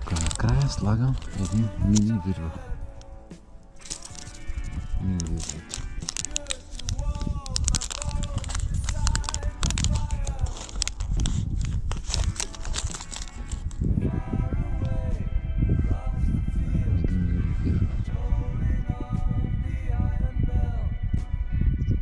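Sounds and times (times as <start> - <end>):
music with singing voice: 0.0 - 22.0.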